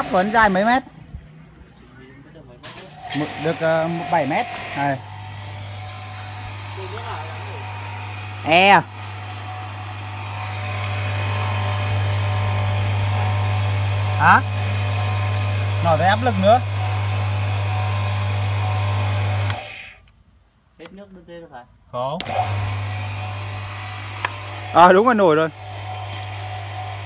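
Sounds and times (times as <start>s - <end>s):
pressure washer humming: 0.0s - 1.0s, 2.6s - 20.0s, 22.2s - 27.0s.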